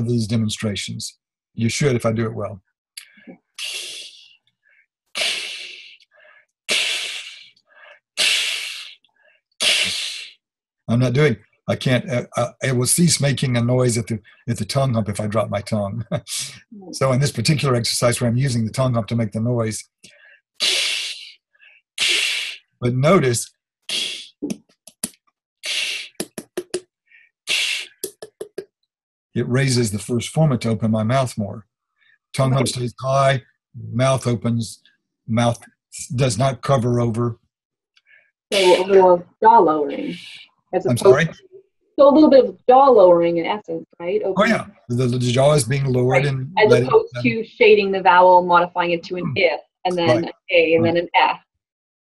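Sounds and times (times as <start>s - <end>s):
man whispering ee vowel: 0.0s - 4.3s, 10.9s - 21.3s, 22.8s - 24.3s, 25.7s - 26.8s, 27.5s - 28.6s, 29.4s - 31.6s, 32.4s - 37.3s, 38.5s - 39.1s, 39.9s - 41.4s, 44.4s - 47.4s, 49.2s - 51.0s
whispered ee vowel hisses: 3.6s - 4.3s, 6.7s - 7.5s, 8.2s - 9.0s, 9.6s - 10.4s, 16.1s - 18.6s, 20.6s - 21.4s, 22.0s - 24.4s, 25.6s - 26.8s, 27.5s - 28.6s, 32.4s - 34.7s, 38.5s - 41.4s, 44.4s - 47.4s, 49.2s - 51.0s
quick sharp mouth clicks: 23.9s - 26.8s, 27.5s - 28.6s.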